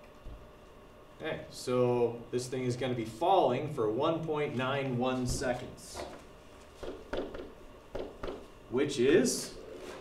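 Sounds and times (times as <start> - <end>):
pen tapping on surface: 6.8 - 8.5.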